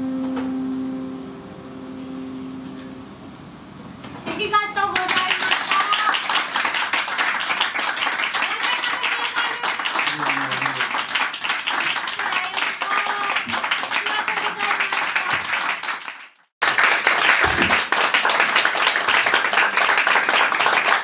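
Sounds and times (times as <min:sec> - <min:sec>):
audience applauding: 0:04.8 - 0:21.0
voices calling out: 0:08.5 - 0:11.0.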